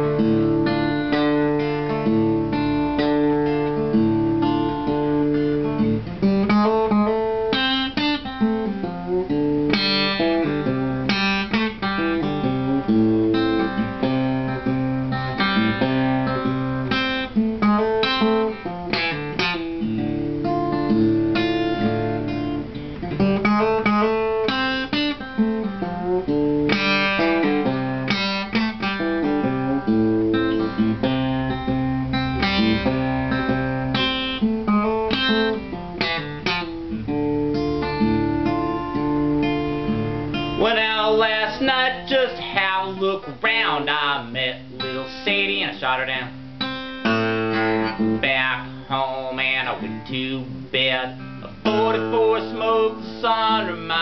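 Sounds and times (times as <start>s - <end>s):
fingerstyle acoustic guitar: 0.0s - 54.0s.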